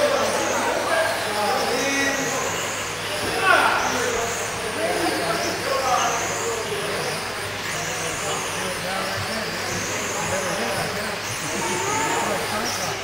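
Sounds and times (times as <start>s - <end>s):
indistinct background chatter: 0.0s - 13.0s.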